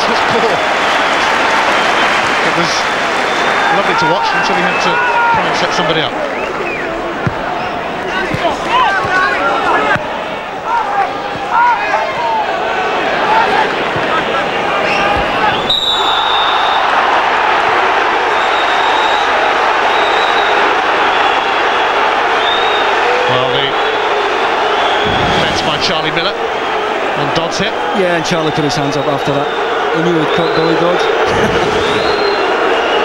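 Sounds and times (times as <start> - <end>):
loud crowd noise: 0.0 - 33.0
shouts from crowd: 0.0 - 33.0.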